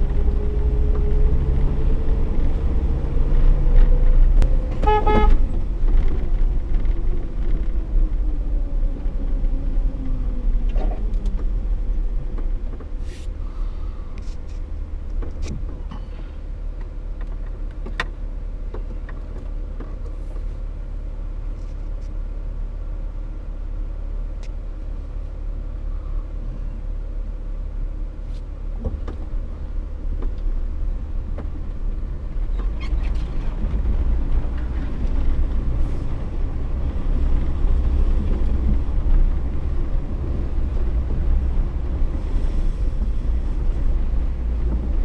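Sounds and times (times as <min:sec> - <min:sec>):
off-road vehicle engine rumbling: 0:00.0 - 0:45.0.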